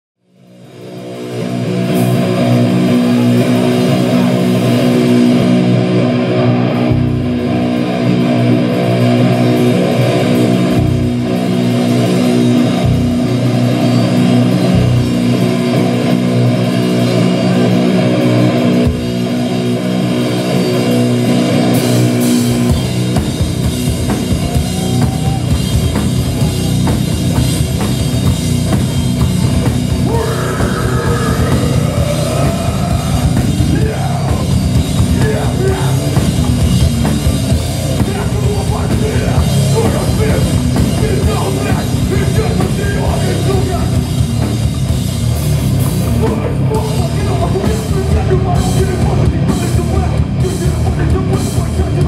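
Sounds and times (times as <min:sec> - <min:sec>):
electric guitar chords: 0:00.4 - 0:52.0
fast full-kit drumming: 0:00.5 - 0:52.0.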